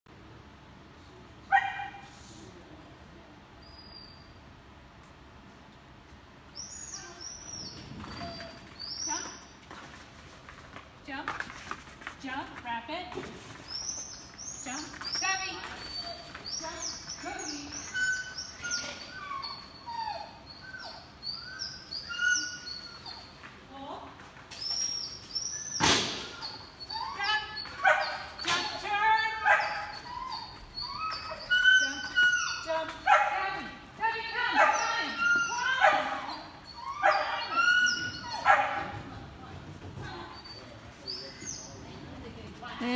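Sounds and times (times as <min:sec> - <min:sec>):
dog barking and yipping: 0:27.6 - 0:33.6, 0:34.4 - 0:38.9.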